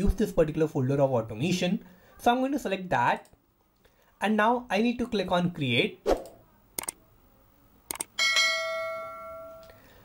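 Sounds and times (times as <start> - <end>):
double mouse click: 6.2 - 7.0, 7.9 - 8.1
bell chime ringing: 8.2 - 9.8.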